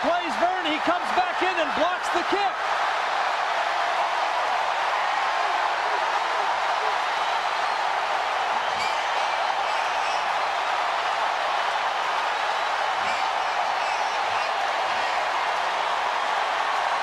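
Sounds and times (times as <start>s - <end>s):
stadium crowd cheering: 0.0s - 17.0s.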